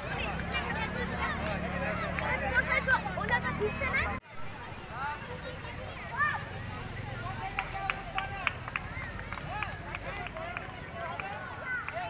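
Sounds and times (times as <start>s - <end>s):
children and adults chattering: 0.0s - 12.0s.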